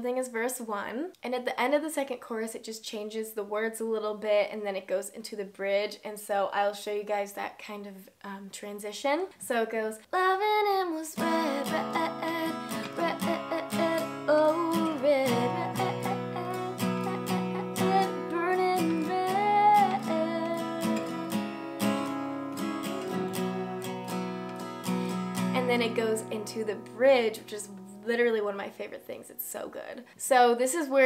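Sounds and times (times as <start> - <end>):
woman singing: 9.4 - 24.3, 25.4 - 28.7
acoustic guitar strummed: 11.2 - 27.5.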